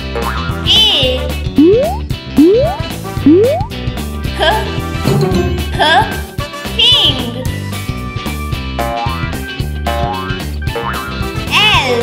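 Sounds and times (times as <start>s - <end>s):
children's background music: 0.0s - 12.0s
warbling high sound effect: 1.6s - 3.7s.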